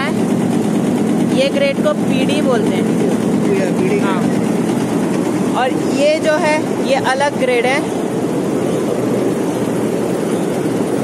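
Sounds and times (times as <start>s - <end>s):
sorting machine droning: 0.0s - 11.0s.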